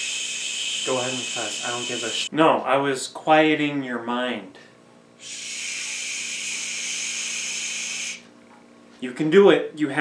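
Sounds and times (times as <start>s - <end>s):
person shushing: 5.2s - 8.2s.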